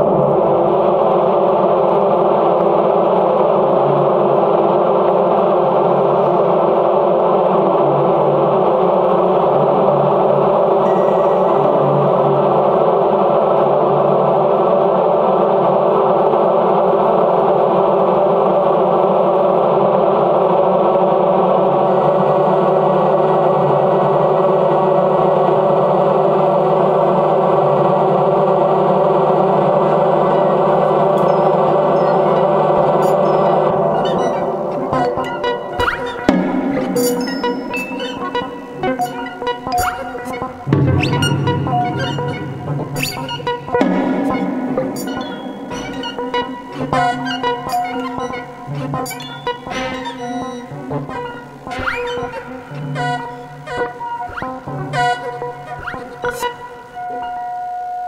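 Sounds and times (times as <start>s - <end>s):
synthesizer drone: 0.0s - 16.2s, 21.1s - 57.3s
faint high tones: 10.8s - 12.9s, 29.5s - 54.3s.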